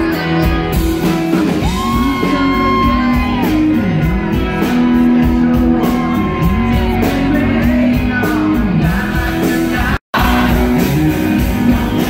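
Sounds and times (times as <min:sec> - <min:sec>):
live country band playing: 0:00.0 - 0:12.0.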